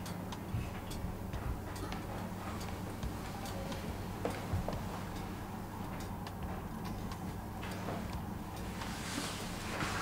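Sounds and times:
light ticking: 0:00.0 - 0:09.0
low steady drone: 0:00.0 - 0:10.0.

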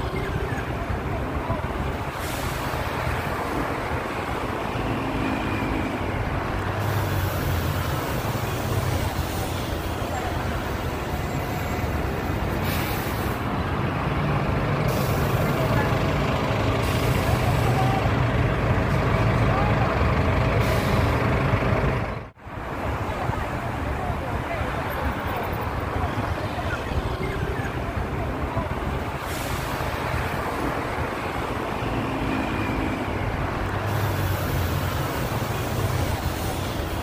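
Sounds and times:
traffic engine hum: 0:00.0 - 0:37.0.

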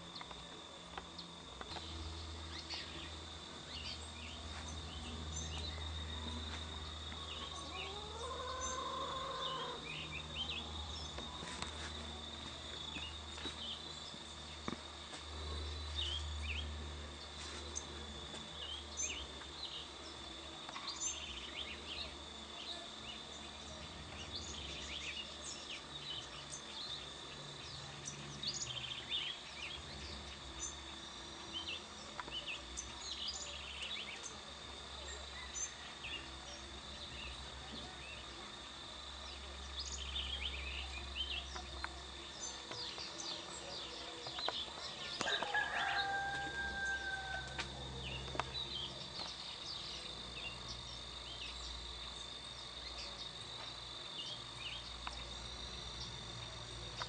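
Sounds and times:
high-pitched insect drone: 0:00.0 - 0:57.0
animal call: 0:07.4 - 0:10.1.

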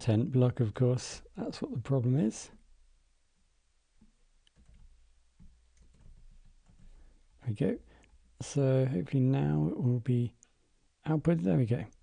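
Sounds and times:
keyboard and mouse clicks: 0:04.4 - 0:07.0.

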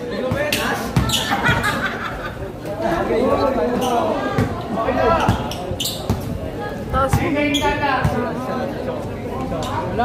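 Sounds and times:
basketball bouncing on court: 0:05.2 - 0:06.3.

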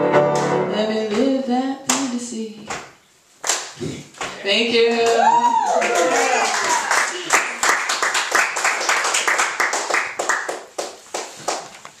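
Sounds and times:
audience applause: 0:05.2 - 0:11.7.

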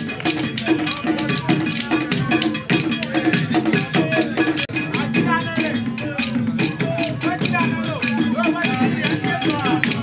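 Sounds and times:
percussion music with bell and drums: 0:00.0 - 0:10.0.

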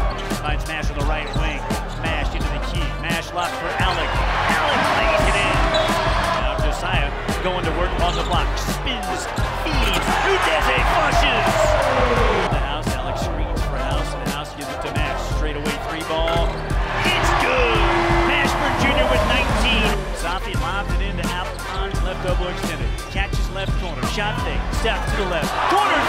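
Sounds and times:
background music with beat: 0:00.0 - 0:26.0
crowd cheering: 0:03.4 - 0:06.6, 0:09.0 - 0:13.4, 0:15.7 - 0:20.4, 0:24.4 - 0:26.0.

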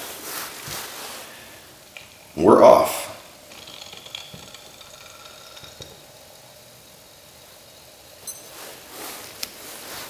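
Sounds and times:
alcohol stove hissing: 0:00.0 - 0:10.0.

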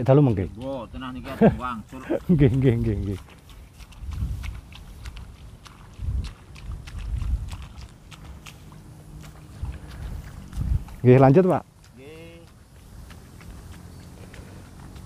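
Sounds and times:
seedlings pulled from mud: 0:01.8 - 0:15.0
wind rumbling on microphone: 0:02.2 - 0:15.0.

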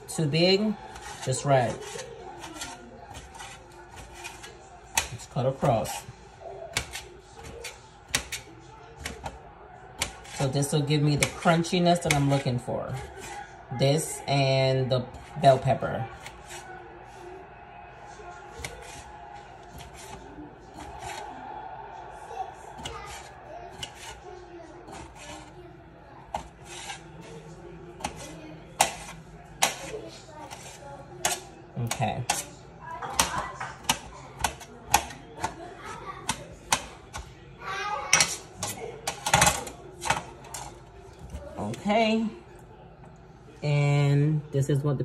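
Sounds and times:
knife blade tapping metal tray: 0:06.7 - 0:08.4, 0:28.0 - 0:32.5, 0:33.1 - 0:35.6.

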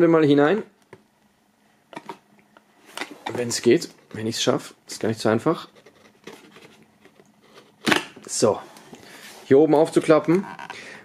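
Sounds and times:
cardboard scraping and rustling: 0:05.5 - 0:07.8.

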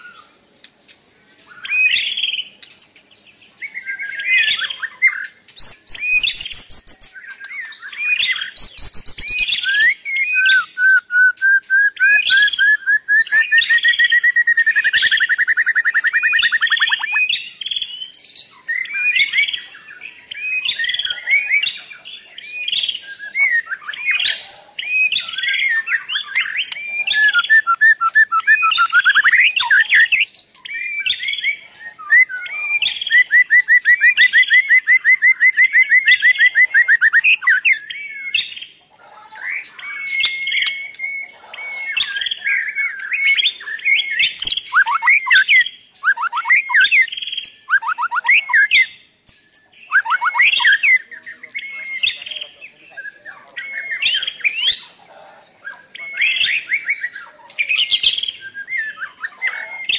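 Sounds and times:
bird chirps and calls: 0:01.2 - 0:59.9
fast repeated bird notes: 0:04.0 - 0:31.4, 0:32.0 - 0:38.8, 0:40.0 - 0:52.5.

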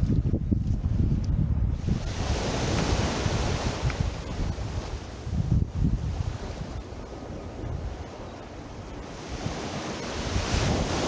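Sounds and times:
wind buffeting microphone: 0:00.0 - 0:11.0
wave washing up sand: 0:01.8 - 0:11.0.

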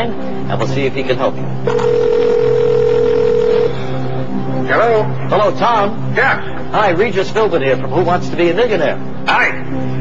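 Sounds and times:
telephone ringing tone: 0:01.6 - 0:04.0.

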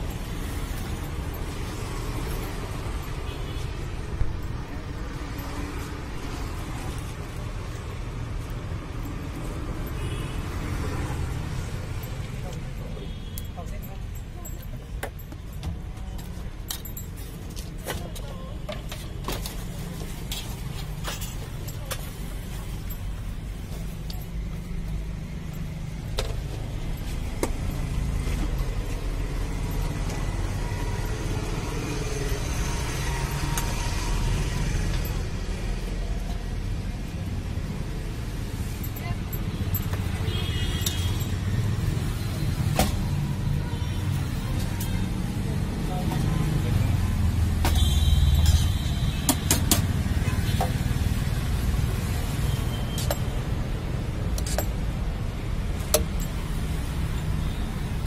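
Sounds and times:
low traffic rumble: 0:00.0 - 0:58.0.

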